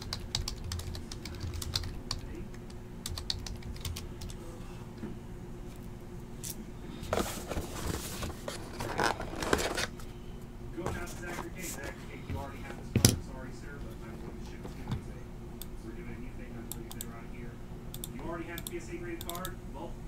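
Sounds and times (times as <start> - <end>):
cardboard box rustling: 7.2 - 9.9.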